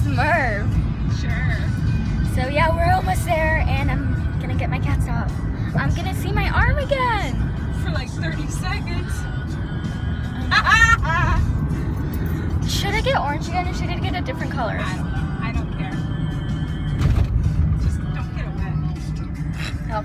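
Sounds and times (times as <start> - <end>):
music playing in car: 0.0 - 20.0
road rumble: 0.0 - 20.0.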